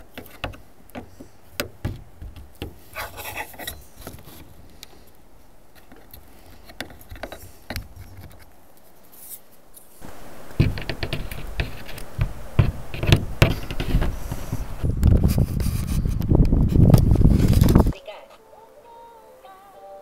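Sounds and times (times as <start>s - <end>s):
rubbing and scraping with clicks: 0.0s - 5.1s, 5.7s - 18.0s.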